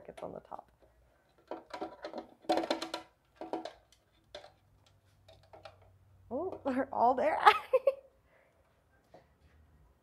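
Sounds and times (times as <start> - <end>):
plastic lid knocking and creaking: 1.4 - 4.6.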